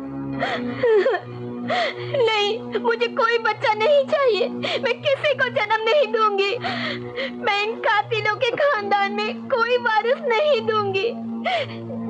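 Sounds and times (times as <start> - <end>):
soft background music: 0.0 - 12.0
woman sobbing: 0.4 - 12.0.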